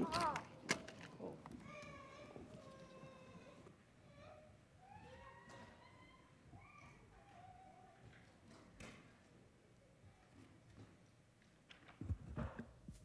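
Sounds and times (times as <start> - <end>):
distant children's voices chattering: 0.0 - 10.8.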